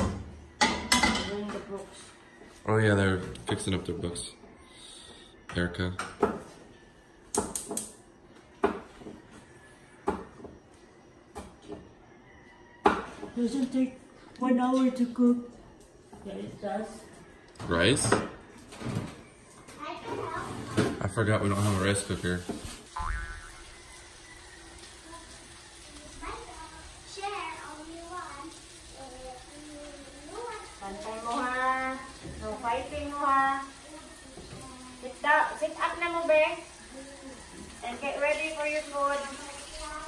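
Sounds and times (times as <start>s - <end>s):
cookware and utensils knocking: 0.6s - 1.5s.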